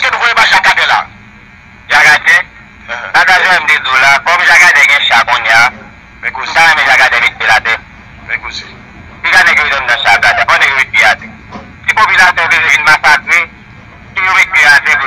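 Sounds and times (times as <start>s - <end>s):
person talking: 14.2s - 15.0s.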